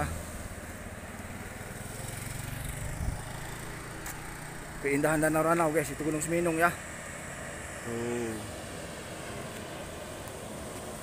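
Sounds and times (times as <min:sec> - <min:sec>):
road noise: 0:00.0 - 0:11.0
small vehicle engine running: 0:00.0 - 0:11.0.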